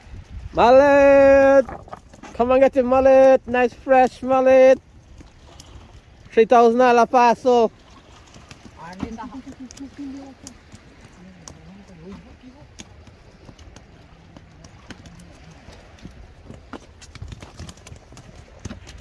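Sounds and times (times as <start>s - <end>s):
fish flopping on wet boards: 1.4s - 2.6s, 7.8s - 19.0s.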